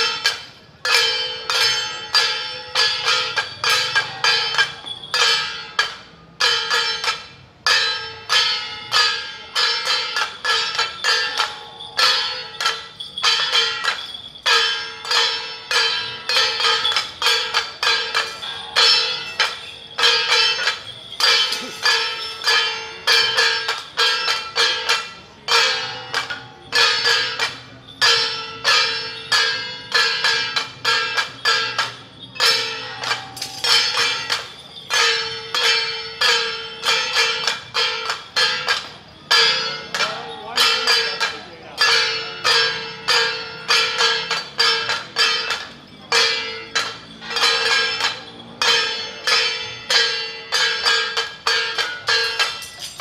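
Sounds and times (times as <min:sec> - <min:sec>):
gongs and cymbals beaten: 0:00.0 - 0:53.0.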